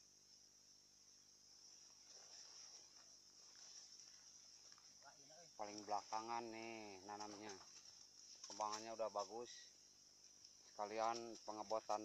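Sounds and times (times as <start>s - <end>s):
high-pitched insect chirring: 0.0s - 12.0s.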